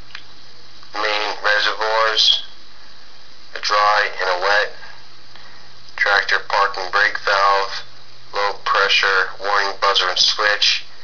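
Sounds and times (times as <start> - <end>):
faint low hum: 0.0 - 11.0
person reading aloud: 0.9 - 2.6, 3.5 - 4.9, 6.0 - 11.0.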